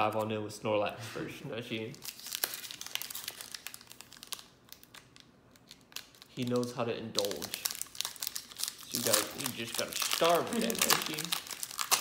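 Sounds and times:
foil wrapper crinkling and tearing: 0:01.9 - 0:12.0.

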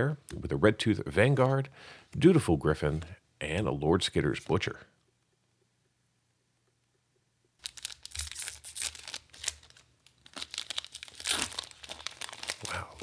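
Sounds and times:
foil wrapper crinkling and tearing: 0:07.6 - 0:13.0.

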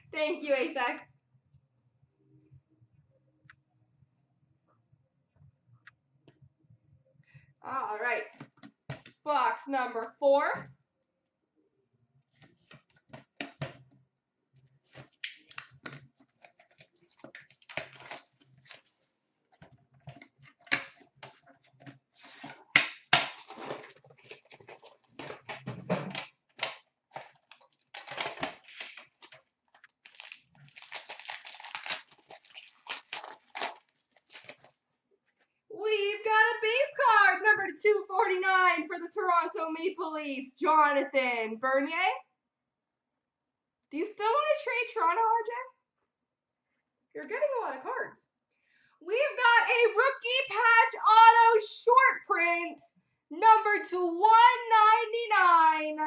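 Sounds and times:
shrink wrap crinkling and tearing: 0:14.9 - 0:19.1, 0:26.7 - 0:34.8.

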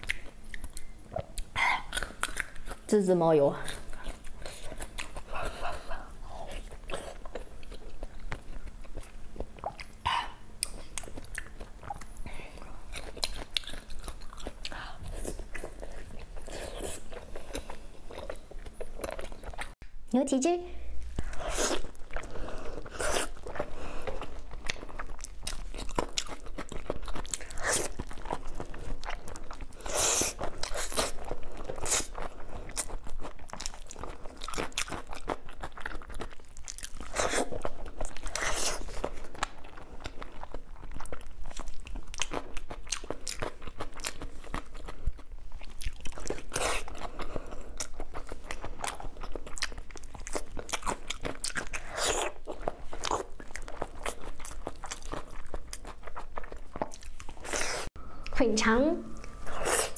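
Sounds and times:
biting and chewing: 0:21.0 - 0:57.9.

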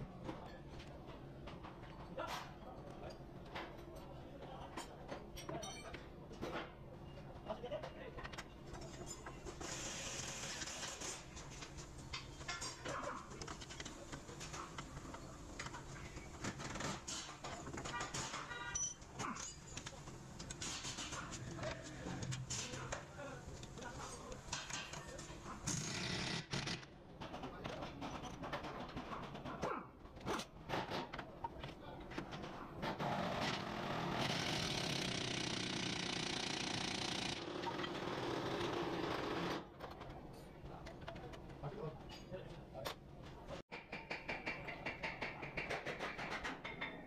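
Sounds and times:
tool scraping and metal knocks: 0:43.7 - 0:47.0.

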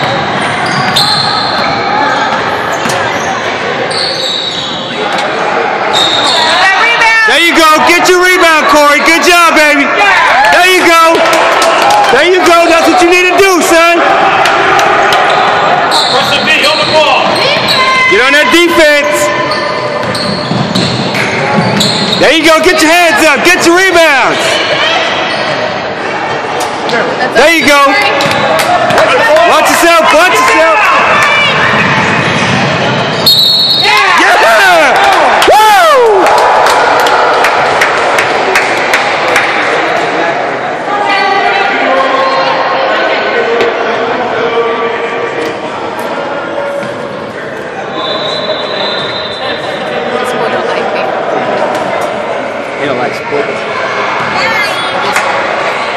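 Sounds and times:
high shoe squeak: 0:00.0 - 0:01.7, 0:02.6 - 0:05.0, 0:19.3 - 0:22.2, 0:48.0 - 0:49.9
echoing chatter of voices: 0:00.0 - 0:55.9
referee's whistle: 0:00.6 - 0:01.7, 0:03.9 - 0:04.9, 0:05.9 - 0:06.6, 0:15.3 - 0:18.0, 0:19.0 - 0:22.3, 0:33.1 - 0:34.0, 0:47.9 - 0:49.9
basketball bouncing on gym floor: 0:20.0 - 0:22.1, 0:28.1 - 0:29.0.

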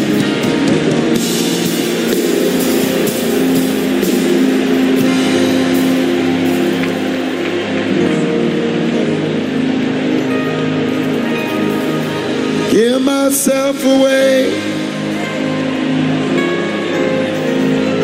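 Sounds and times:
band with electric guitar and drums: 0:00.0 - 0:12.7.

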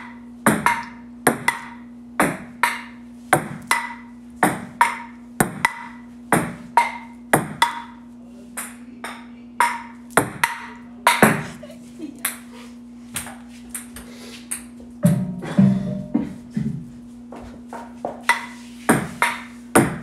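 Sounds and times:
ping-pong ball ticking: 0:00.0 - 0:03.0, 0:03.6 - 0:08.0, 0:08.6 - 0:11.4.

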